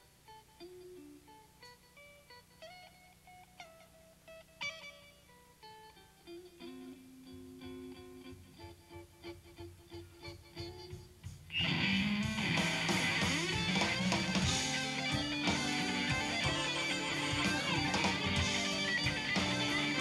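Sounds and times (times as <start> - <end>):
electric blues band playing: 0.0 - 20.0
electric guitar picking soft notes: 0.0 - 20.0.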